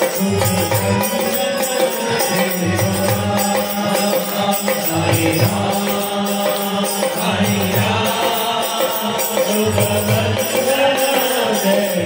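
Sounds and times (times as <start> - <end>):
group chanting with music: 3.5 - 12.0.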